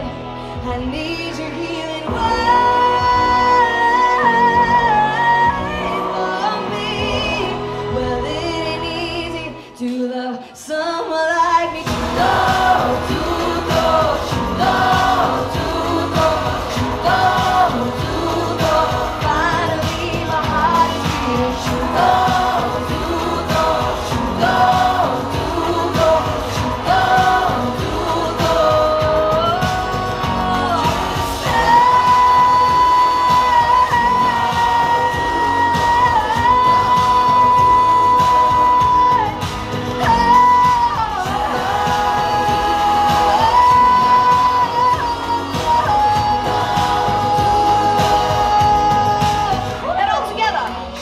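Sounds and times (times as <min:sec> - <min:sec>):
choir-like backing vocals: 0:00.0 - 0:50.0
backing track: 0:00.0 - 0:51.0
woman singing pop ballad: 0:00.0 - 0:51.0
drum beat: 0:11.9 - 0:49.9.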